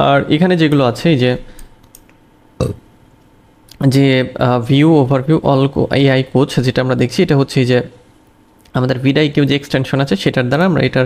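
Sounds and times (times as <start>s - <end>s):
computer mouse clicks: 1.6s - 2.2s
throaty sound from speaker: 2.6s - 2.9s.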